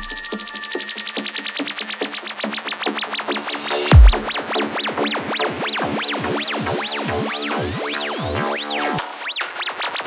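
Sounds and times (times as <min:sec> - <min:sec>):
electronic dance music build-up: 0:00.0 - 0:10.0
fast ticking pattern: 0:03.9 - 0:08.7.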